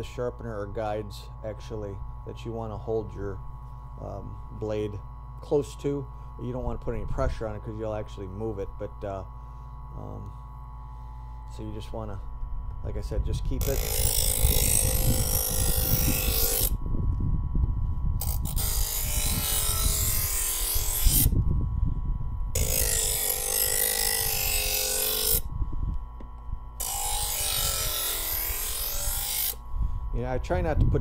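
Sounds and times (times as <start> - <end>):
knife sharpener motor hum: 0.0 - 30.6
knife grinding rasp: 13.6 - 16.8, 18.2 - 21.3, 22.6 - 25.5, 26.8 - 29.6.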